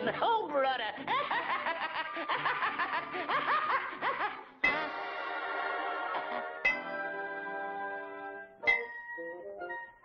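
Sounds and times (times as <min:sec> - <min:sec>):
faint orchestral music: 0:00.0 - 0:10.0.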